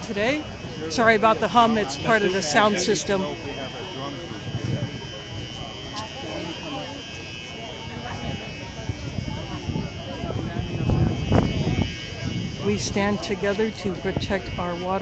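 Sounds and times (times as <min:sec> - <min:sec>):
crowd voices: 0:00.0 - 0:15.0
sound system buzzing hum: 0:00.0 - 0:15.0.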